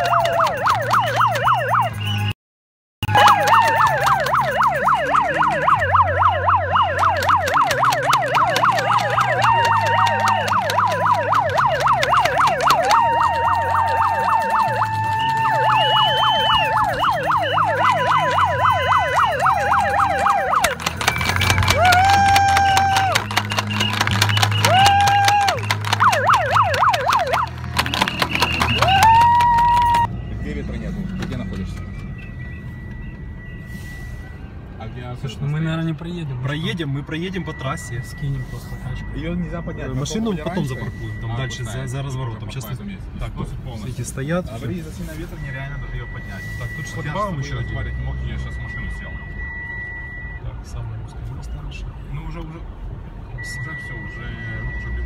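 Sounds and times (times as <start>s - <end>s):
emergency sirens yelping: 0.0s - 2.4s, 3.0s - 35.6s, 44.5s - 50.6s
low vehicle rumble: 3.0s - 50.7s.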